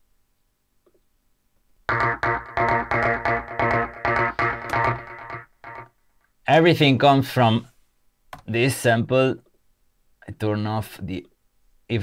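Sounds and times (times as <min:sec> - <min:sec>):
repeated synth chord stab: 0:01.9 - 0:05.9.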